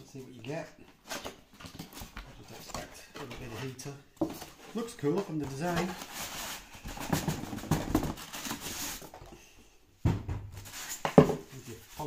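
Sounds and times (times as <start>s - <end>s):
cardboard and polystyrene scraping: 5.5s - 9.2s
thump: 10.0s - 10.6s.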